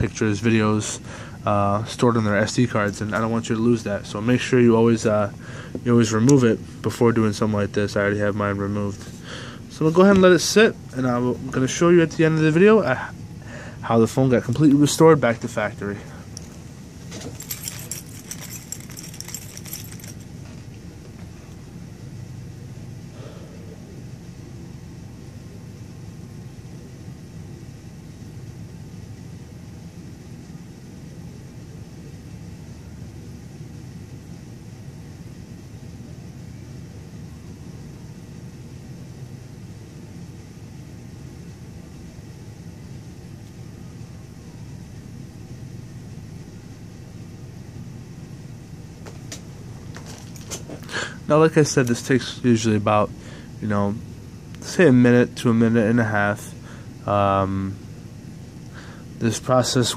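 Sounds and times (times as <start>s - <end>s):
high jingle: 17.1s - 20.3s.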